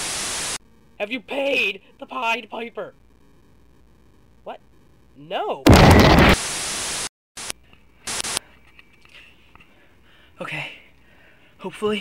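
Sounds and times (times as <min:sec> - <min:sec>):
cartoon laser blast static: 0:05.7 - 0:07.1.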